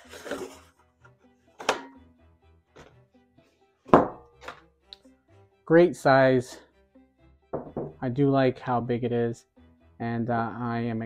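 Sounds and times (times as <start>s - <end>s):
soft background music: 0.0s - 11.0s
pans knocking on wooden table: 3.9s - 4.3s, 7.6s - 8.0s.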